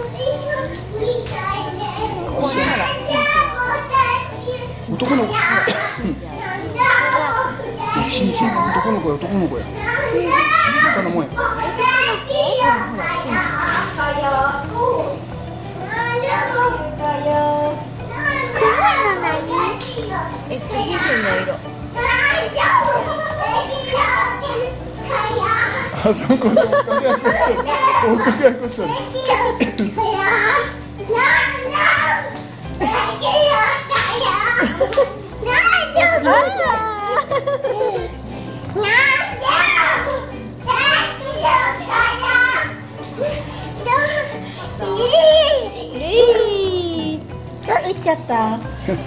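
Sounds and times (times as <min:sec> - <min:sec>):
other voices in room: 0:00.0 - 0:49.0.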